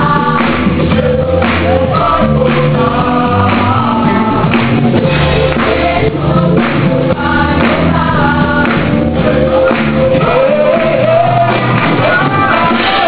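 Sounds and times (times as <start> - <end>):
choir singing worship song: 0.0 - 13.0
musical accompaniment with beat: 0.0 - 13.0.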